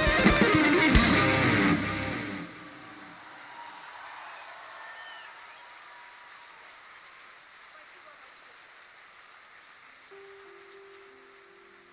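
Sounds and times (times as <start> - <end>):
lower musical notes: 0.0 - 3.0
audience hall noise: 0.0 - 11.9.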